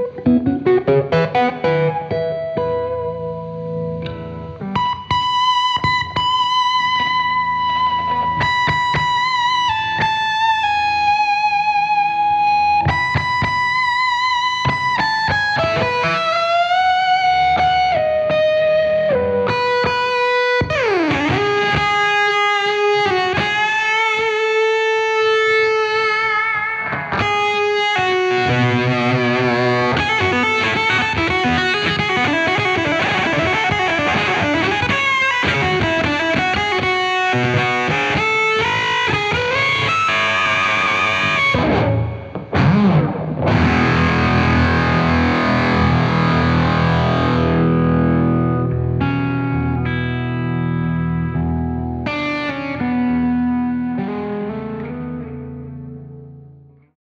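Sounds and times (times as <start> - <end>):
fuzz electric guitar: 0.0 - 56.7.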